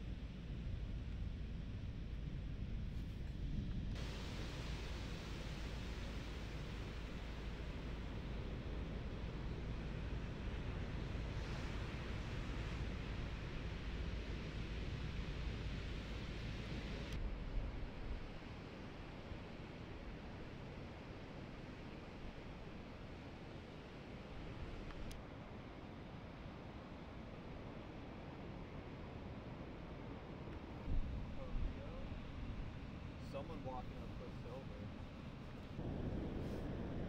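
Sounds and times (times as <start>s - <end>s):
wind rumble on microphone: 29.1s - 37.0s.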